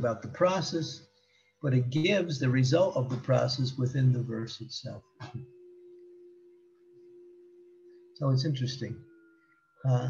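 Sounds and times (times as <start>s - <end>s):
man's voice: 0.0s - 1.0s, 1.7s - 5.4s
faint steady tone: 0.0s - 10.0s.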